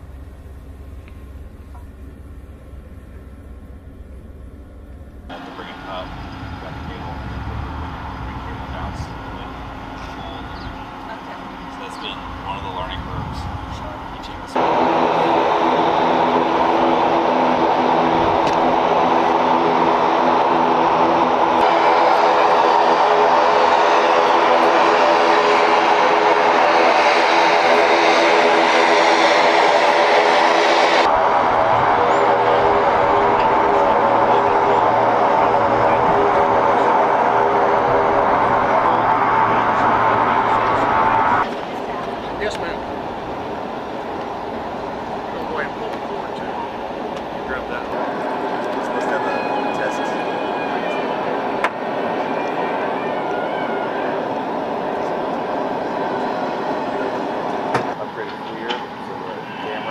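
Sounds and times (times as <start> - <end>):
helicopter turbine engine whine: 0.0 - 59.9.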